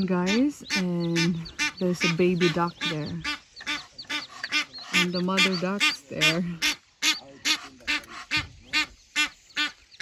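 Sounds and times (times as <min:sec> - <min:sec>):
duck quacking: 0:00.1 - 0:09.8.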